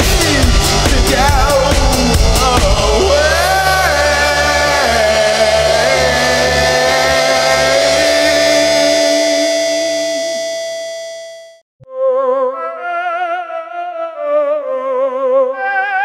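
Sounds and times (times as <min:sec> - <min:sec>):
rock song held chord: 0:00.0 - 0:11.6
tune with wavering notes: 0:00.6 - 0:11.6.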